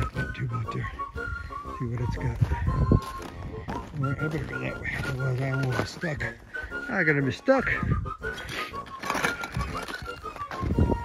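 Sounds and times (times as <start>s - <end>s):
footsteps crunching on rock: 2.1s - 6.8s, 8.0s - 11.0s.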